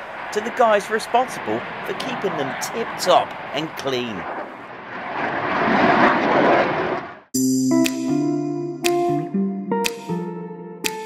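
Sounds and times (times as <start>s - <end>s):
jet aircraft engine rushing: 0.0s - 7.3s.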